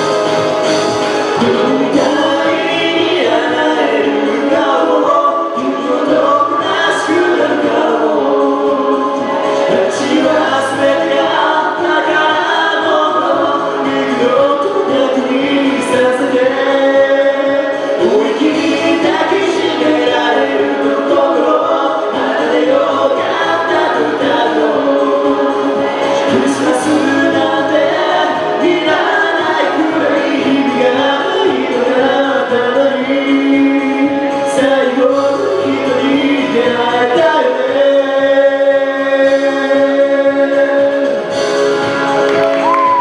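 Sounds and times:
karaoke backing track: 0.0s - 43.0s
two people singing duet: 1.0s - 43.0s.

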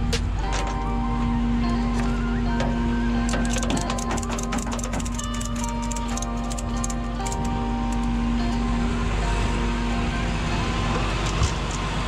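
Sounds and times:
background music: 0.0s - 12.0s
truck engine rumbling: 0.0s - 12.0s.

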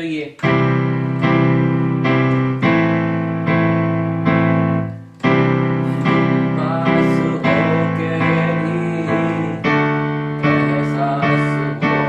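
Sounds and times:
digital piano playing chords: 0.4s - 12.0s.

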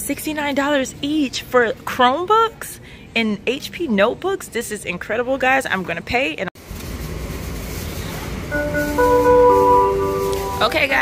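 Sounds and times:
store background rumble: 0.0s - 11.0s
anti-theft alarm tones: 8.5s - 11.0s.

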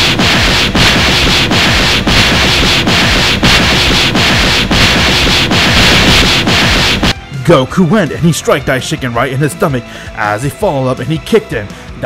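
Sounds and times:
dense rushing noise with booms: 0.0s - 7.2s.

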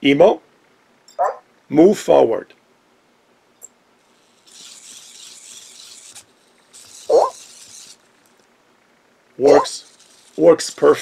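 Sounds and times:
small motors whirring: 4.0s - 8.5s, 9.4s - 11.0s.

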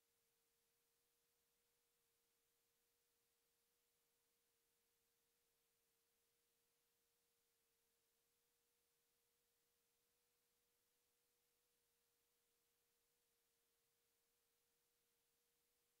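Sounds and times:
faint steady tone: 0.0s - 16.0s.

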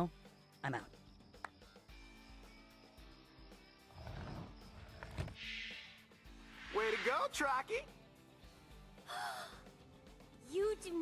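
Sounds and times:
young woman gasping: 9.1s - 9.6s.

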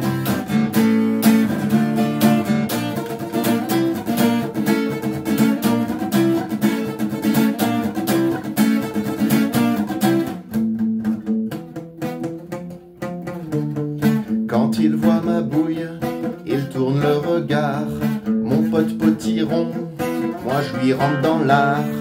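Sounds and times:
acoustic guitar strumming: 0.0s - 22.0s.

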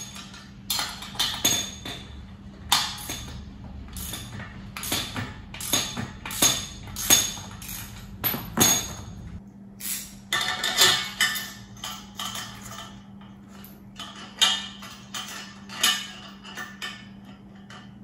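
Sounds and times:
tools clinking on steel frame: 0.0s - 18.0s.

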